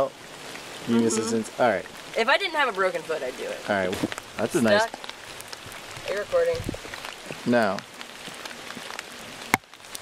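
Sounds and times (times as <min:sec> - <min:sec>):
light rain pattering on leaves: 0:00.0 - 0:10.0.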